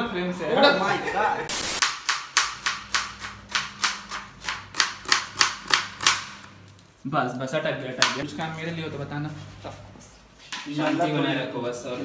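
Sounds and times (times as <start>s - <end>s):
knife slicing onion on board: 1.8s - 6.5s.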